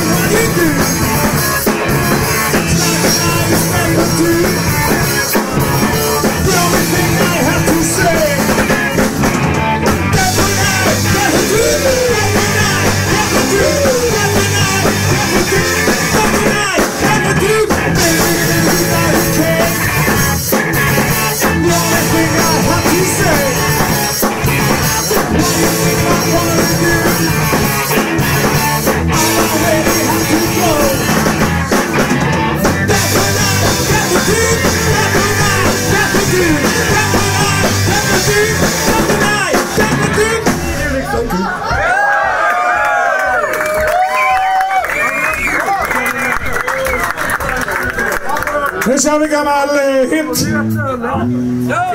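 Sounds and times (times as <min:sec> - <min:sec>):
electric guitars: 0:00.0 - 0:41.3
vocalist singing: 0:00.0 - 0:41.5
bass guitar: 0:00.0 - 0:44.1, 0:50.0 - 0:51.9
drum kit: 0:00.0 - 0:44.6.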